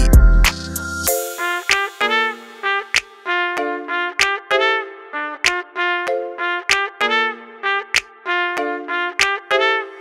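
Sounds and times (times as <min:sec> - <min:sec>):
hip-hop instrumental: 0:00.0 - 0:10.0
brass horn melody: 0:01.2 - 0:10.0.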